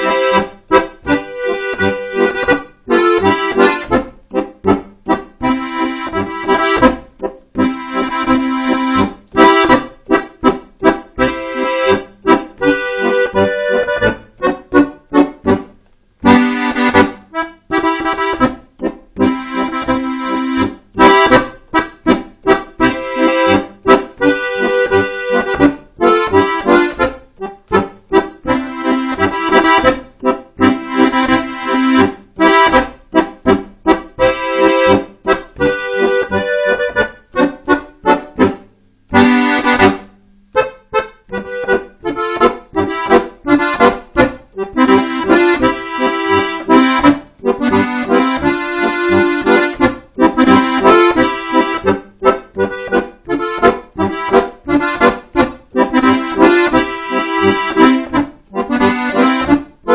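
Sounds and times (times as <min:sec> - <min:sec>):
piano accordion dance tune: 0:00.0 - 0:59.9.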